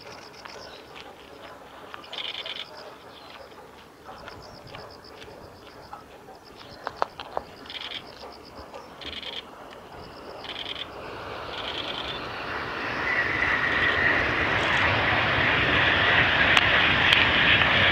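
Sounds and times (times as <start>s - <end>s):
aircraft passing overhead: 0.0s - 17.9s.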